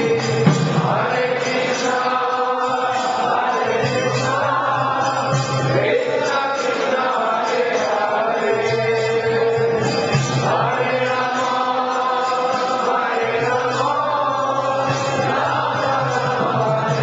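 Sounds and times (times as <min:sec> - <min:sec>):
group chanting: 0:00.0 - 0:17.0.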